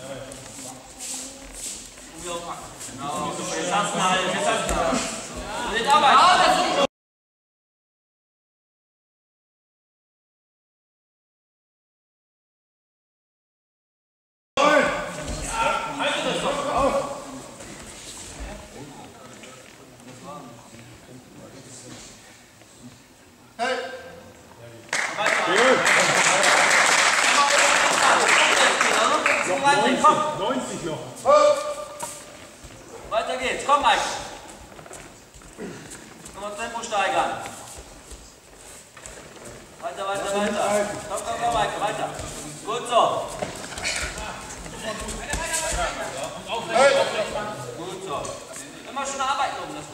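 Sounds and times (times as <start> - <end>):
bare feet shuffling on mats: 0.1 - 3.4, 31.2 - 46.5.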